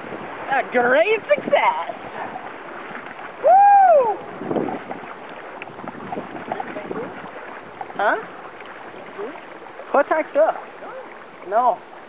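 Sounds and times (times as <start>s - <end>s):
wind on microphone: 0.0s - 9.8s
whitewater rushing: 0.0s - 12.0s.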